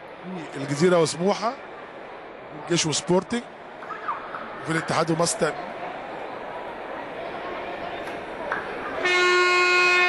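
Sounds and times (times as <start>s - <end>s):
murmur of crowd in hall: 0.0s - 10.0s
arena horn long blast: 9.0s - 10.0s.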